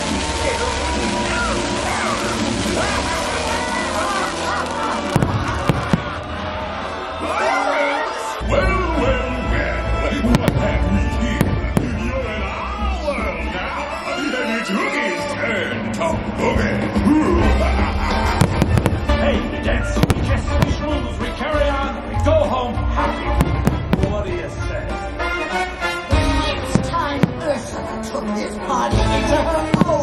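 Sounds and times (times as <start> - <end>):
fireworks bangs: 0.0 - 7.2, 10.2 - 13.5, 17.6 - 21.6, 23.2 - 27.8, 29.3 - 30.0.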